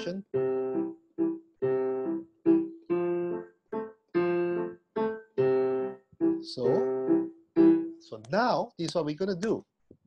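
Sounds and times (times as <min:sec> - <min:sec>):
digital piano playing waltz chords: 0:00.0 - 0:09.2.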